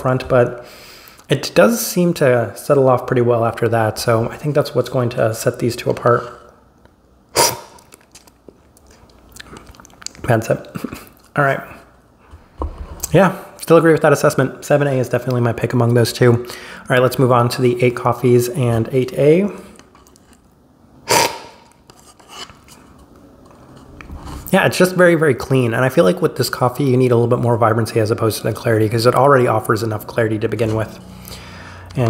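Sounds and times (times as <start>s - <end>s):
loud coffee slurp: 7.4s - 7.9s, 21.1s - 21.7s.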